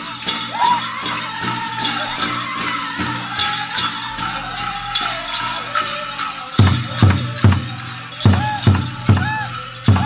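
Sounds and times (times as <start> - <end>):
bells and metal jingles jangling: 0.0 - 10.0
high sung voices: 0.0 - 10.0
big drum steady beat: 6.4 - 10.0.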